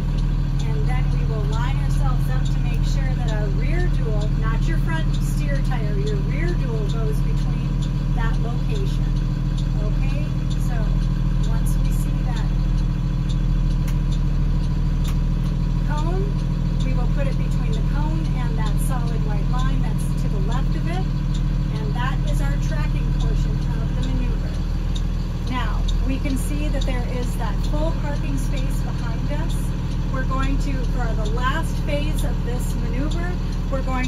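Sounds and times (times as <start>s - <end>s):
bus engine running at low revs: 0.0s - 34.0s.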